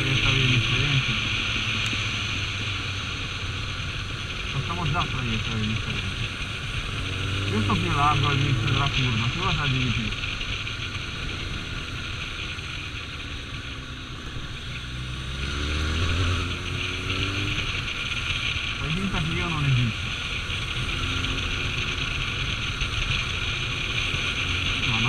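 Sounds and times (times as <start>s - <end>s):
motorcycle engine riding: 0.0s - 25.0s.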